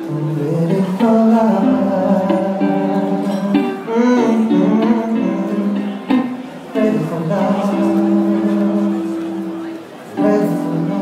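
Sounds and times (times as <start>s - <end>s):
guitar chords: 0.0s - 11.0s
person singing: 0.0s - 11.0s.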